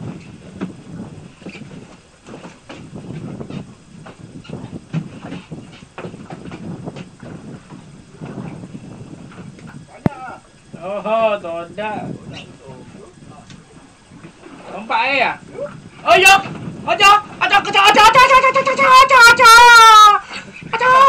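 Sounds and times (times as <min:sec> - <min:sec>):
knocks and clicks on boat: 0:00.0 - 0:10.2, 0:13.4 - 0:14.7
faint voices: 0:09.7 - 0:21.0.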